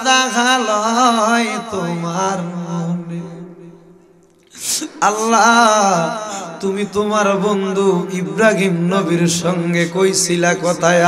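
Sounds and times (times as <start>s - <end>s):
man chanting: 0.0s - 3.9s, 4.6s - 11.0s.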